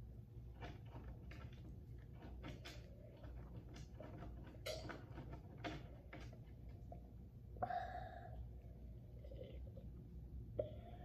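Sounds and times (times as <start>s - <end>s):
low room hum: 0.0s - 11.0s
child gulping from cup: 9.1s - 11.0s.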